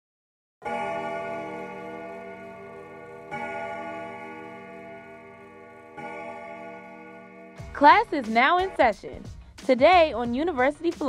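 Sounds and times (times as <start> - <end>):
bell ringing: 0.6 - 9.2.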